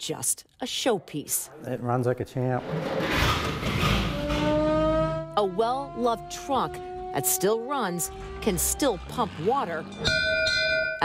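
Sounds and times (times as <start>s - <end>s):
truck engine starting and running: 2.6s - 10.0s.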